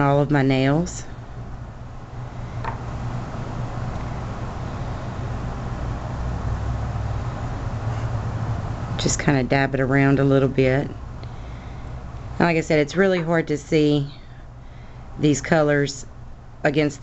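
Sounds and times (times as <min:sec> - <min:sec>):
low hum and rumble: 0:00.0 - 0:17.0.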